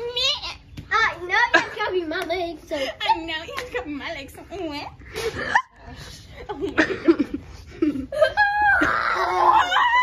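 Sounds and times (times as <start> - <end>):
girl laughing: 5.2 - 10.0.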